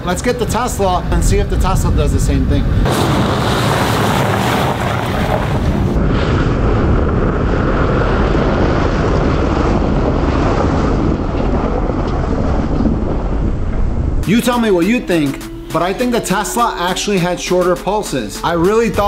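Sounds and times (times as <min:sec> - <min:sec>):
wind buffeting microphone: 0:00.0 - 0:15.3
tyres rushing on packed snow: 0:02.9 - 0:06.9.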